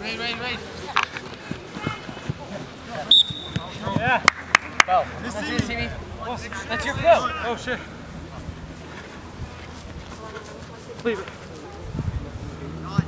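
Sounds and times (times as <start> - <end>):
players and spectators calling out: 0.0 - 8.3.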